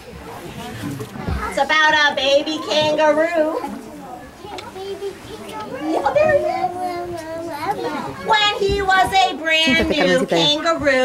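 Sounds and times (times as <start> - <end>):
young children chattering: 0.0 - 11.0
louder voice: 9.7 - 10.6.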